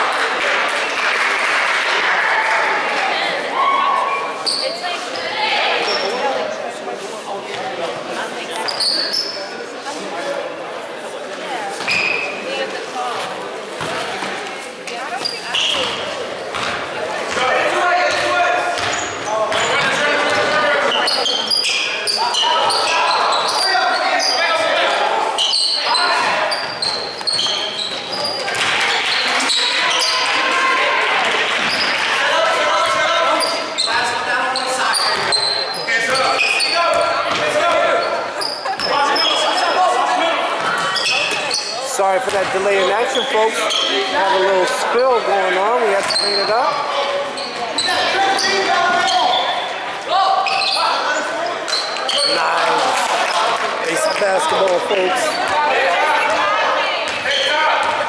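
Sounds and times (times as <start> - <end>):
voices echoing in a hall: 0.0 - 58.0
basketball bouncing on wooden court: 15.7 - 17.4, 18.1 - 20.6, 42.3 - 42.5.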